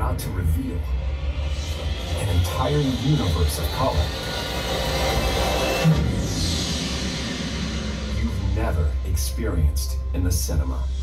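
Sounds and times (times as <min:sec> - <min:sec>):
deep steady rumble: 0:00.0 - 0:11.0
shimmering held tone: 0:00.0 - 0:11.0.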